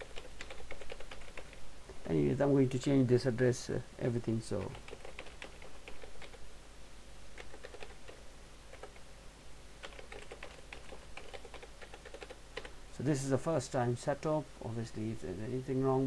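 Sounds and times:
computer keyboard typing: 0.0s - 1.6s, 4.6s - 6.4s, 7.4s - 9.0s, 9.8s - 12.8s.

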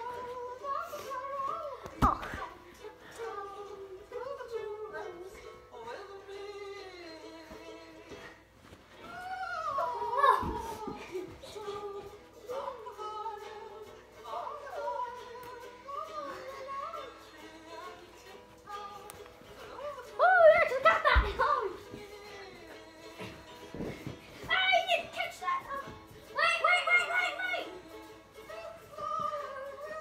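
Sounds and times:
music with singing: 0.0s - 30.0s.

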